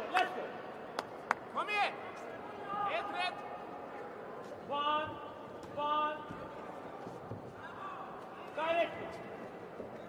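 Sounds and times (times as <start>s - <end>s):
sports hall background noise: 0.0s - 10.0s.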